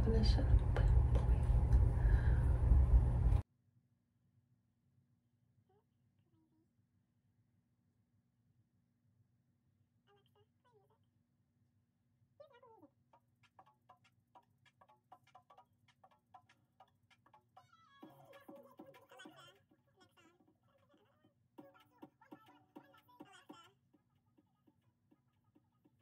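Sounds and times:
low steady hum: 0.0 - 3.4.

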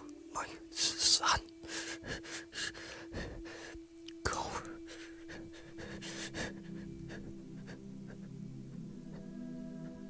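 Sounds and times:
low music: 0.0 - 10.0
man sobbing and breathing raggedly: 1.0 - 10.0.

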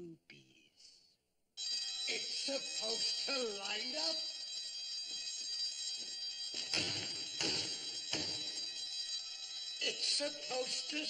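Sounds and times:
electric alarm bell ringing: 1.6 - 11.0.

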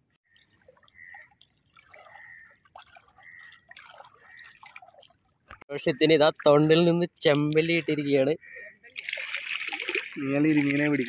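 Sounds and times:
water trickling and dripping: 0.0 - 11.0.

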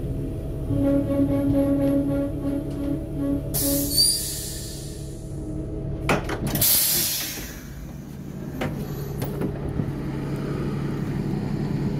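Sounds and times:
diesel railcar engine idling: 0.0 - 11.9.

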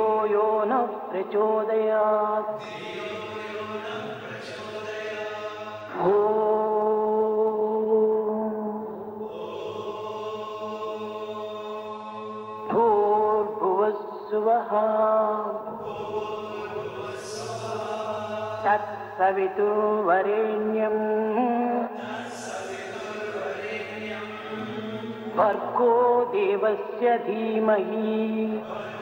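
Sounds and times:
voice chanting long notes: 14.9 - 27.3.

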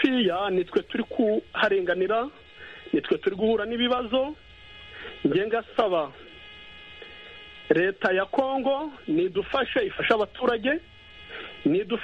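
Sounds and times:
person speaking over phone line: 0.0 - 4.4, 5.0 - 6.3, 7.7 - 12.0
high-pitched electrical buzz: 0.0 - 12.0.

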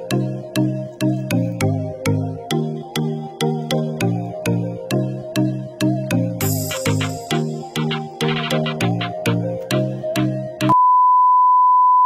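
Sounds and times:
rhythmic music with a beat: 0.0 - 10.8.

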